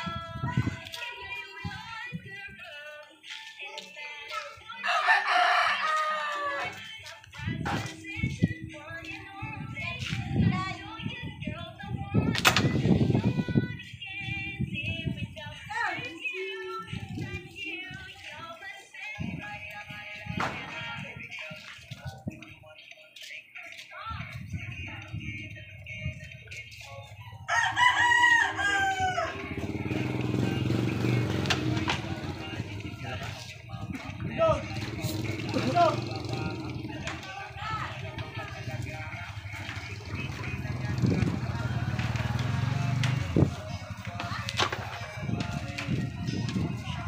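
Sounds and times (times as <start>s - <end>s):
rooster crowing: 4.8s - 6.8s, 27.5s - 29.6s.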